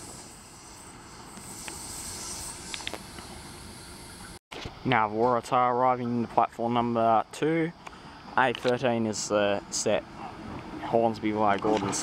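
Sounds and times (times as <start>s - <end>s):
steady high hiss: 0.0s - 12.0s.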